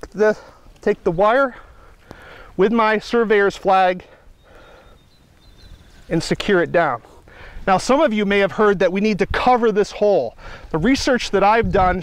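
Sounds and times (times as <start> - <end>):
gloved hands rustling in soil: 0.0 - 12.0.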